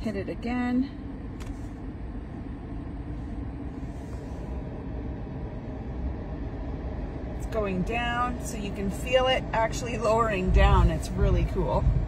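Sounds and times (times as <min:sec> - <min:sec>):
air suspension lowering rumble: 0:01.0 - 0:12.0.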